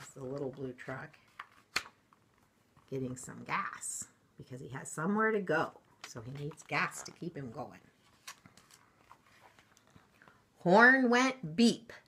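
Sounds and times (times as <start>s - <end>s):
picture book ticks and rustles: 0.0s - 3.8s, 4.8s - 10.5s.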